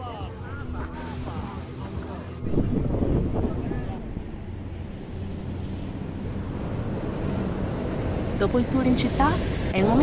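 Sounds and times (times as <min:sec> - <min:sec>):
wind buffeting microphone: 0:02.4 - 0:05.1.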